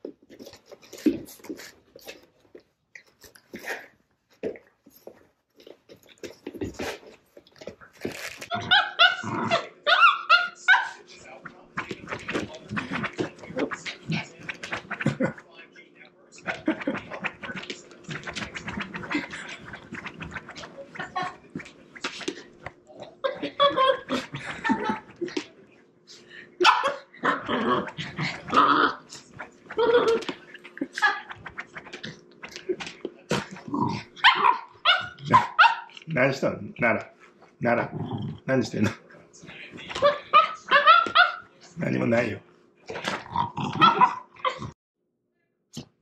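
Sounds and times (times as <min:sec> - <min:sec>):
dogs growling and barking: 0:08.0 - 0:11.0, 0:16.4 - 0:25.5, 0:26.6 - 0:36.0, 0:39.9 - 0:41.5, 0:42.9 - 0:44.8
dogs play barking: 0:08.5 - 0:11.0, 0:26.6 - 0:30.4, 0:34.0 - 0:36.0, 0:40.0 - 0:41.5, 0:43.7 - 0:44.7
dogs scuffling: 0:11.2 - 0:15.4, 0:16.4 - 0:25.6.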